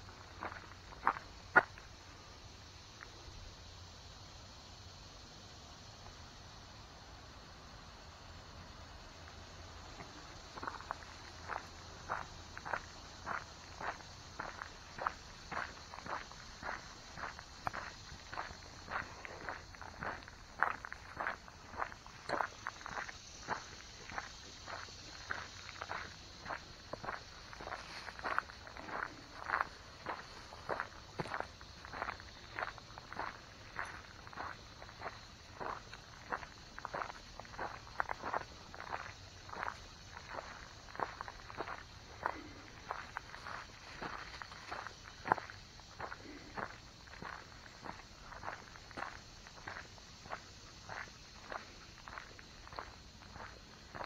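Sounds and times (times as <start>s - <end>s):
footsteps on gravelly dirt: 0.0s - 2.0s, 9.3s - 54.0s.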